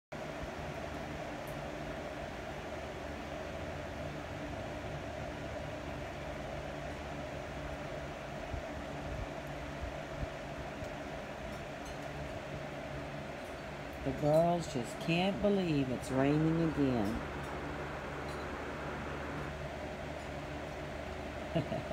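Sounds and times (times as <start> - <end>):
steady mechanical hum: 0.1 - 21.9.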